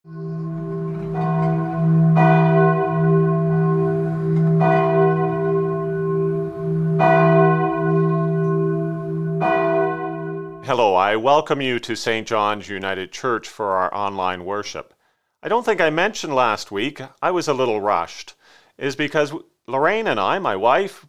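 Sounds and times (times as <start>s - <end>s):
low hum note: 0.1s - 10.7s
church bell tolling: 0.1s - 11.0s.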